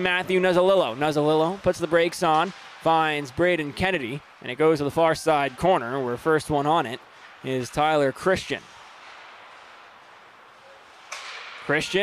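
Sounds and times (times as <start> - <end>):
faint ice rink background noise: 0.0 - 12.0.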